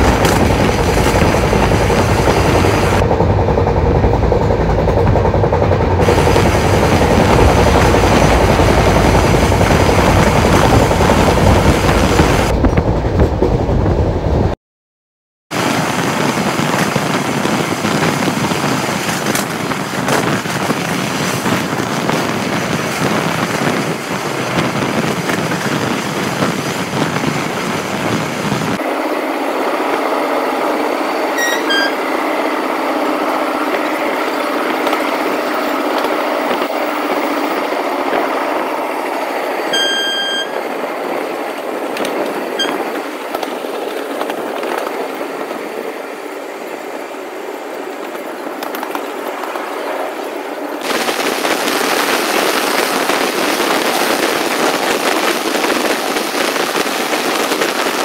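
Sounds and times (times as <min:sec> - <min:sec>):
rushing air: 0:00.0 - 0:14.6
train wheels rumbling on rails: 0:00.0 - 0:14.6, 0:15.5 - 0:58.0
brief high-pitched tone: 0:31.3 - 0:32.2, 0:39.7 - 0:40.7.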